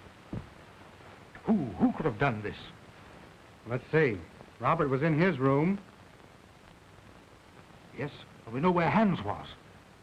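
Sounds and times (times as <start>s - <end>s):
old film soundtrack hiss: 0.0s - 10.0s
man speaking: 1.4s - 2.8s, 3.7s - 5.8s, 8.0s - 9.6s.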